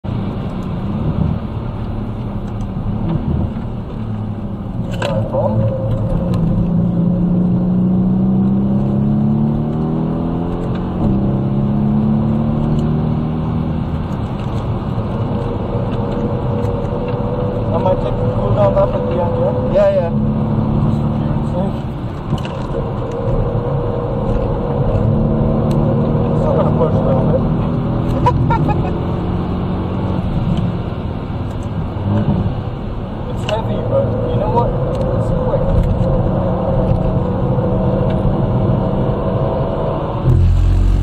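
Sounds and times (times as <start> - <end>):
car engine accelerating hard: 0.1 - 41.0.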